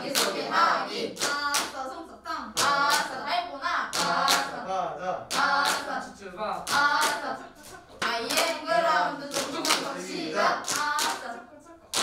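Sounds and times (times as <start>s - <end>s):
group clapping in rhythm: 0.0s - 12.0s.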